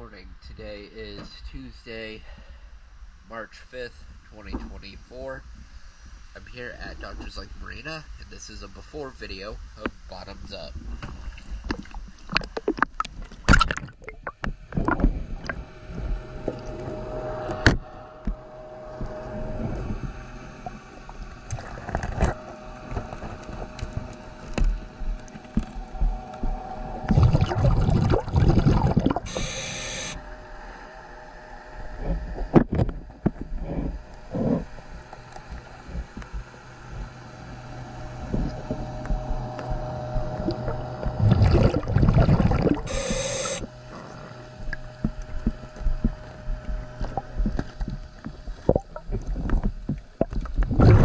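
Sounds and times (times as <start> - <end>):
faint steady hum: 0.0 - 51.0
underwater clicks and knocks: 11.0 - 16.8, 44.6 - 50.9
underwater gurgling bubbles: 11.1 - 18.4, 19.0 - 30.1, 38.2 - 51.0.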